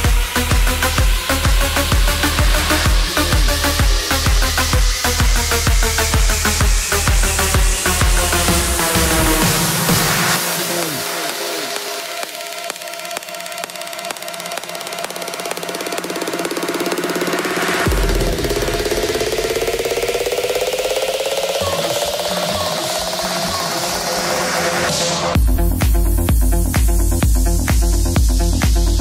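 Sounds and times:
house music: 0.0 - 29.0.

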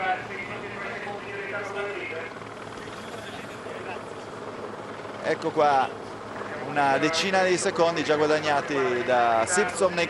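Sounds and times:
faint voices: 0.0 - 10.0
low engine drone: 0.0 - 10.0.

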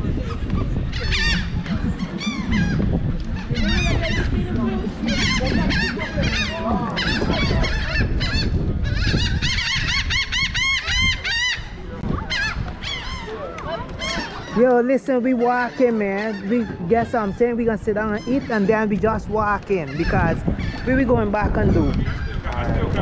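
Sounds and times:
seagulls calling: 0.0 - 23.0.

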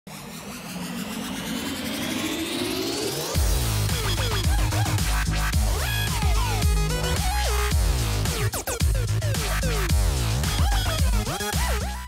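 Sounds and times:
electronic buzzing riser: 0.1 - 11.3.

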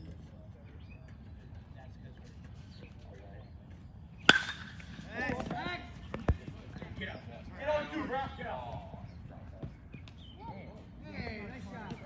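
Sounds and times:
bat cracking a ball: 4.2 - 5.0.

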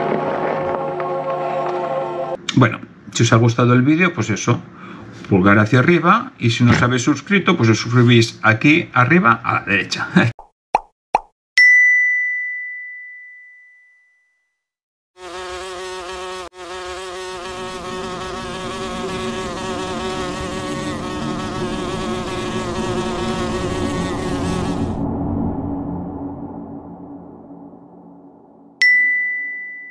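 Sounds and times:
high chime ding: 11.6 - 14.6, 28.8 - 29.9
steady buzzing drone: 16.9 - 25.2.

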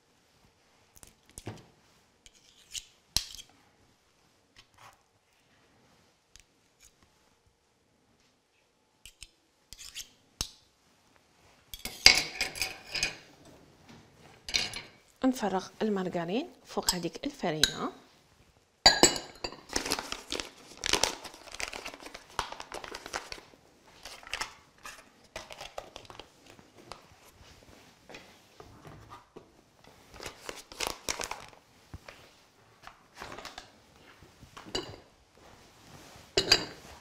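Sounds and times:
plastic tub crinkling: 19.6 - 27.1, 30.2 - 31.6.

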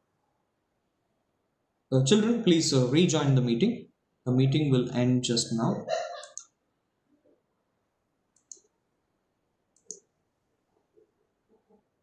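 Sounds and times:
faint short clicks: 8.4 - 8.7.

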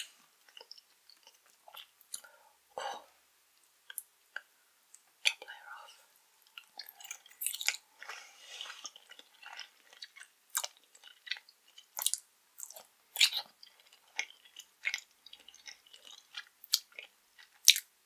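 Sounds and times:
chewing mouth clicks and smacks: 6.5 - 17.9.

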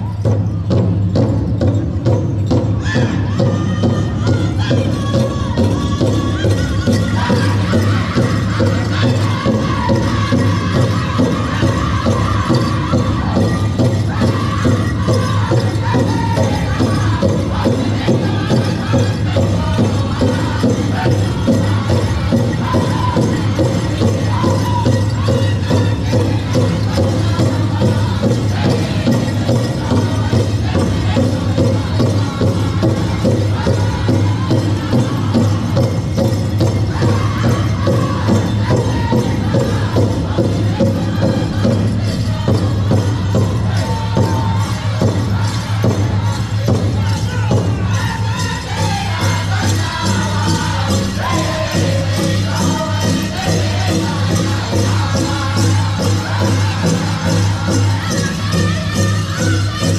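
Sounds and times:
large drum steady beat: 0.0 - 59.9.

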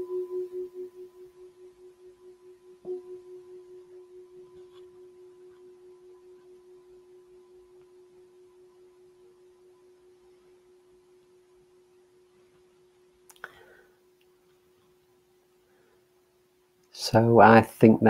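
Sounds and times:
singing bowl tone: 0.0 - 14.1.

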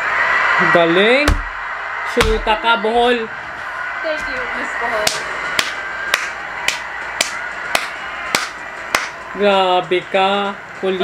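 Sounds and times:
steady background noise: 0.0 - 11.0
hand claps: 5.0 - 9.3.

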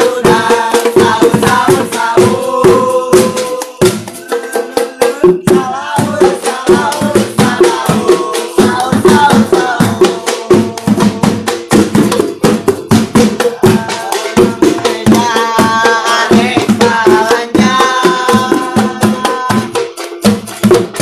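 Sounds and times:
drums and pots beaten: 0.0 - 21.0
group singing: 0.0 - 21.0.

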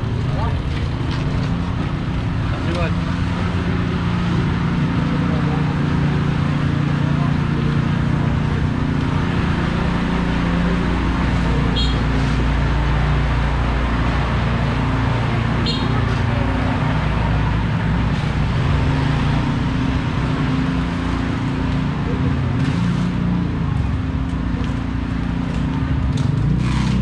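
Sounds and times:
people's voices: 0.0 - 26.2
motorbike traffic hum: 0.0 - 27.0.

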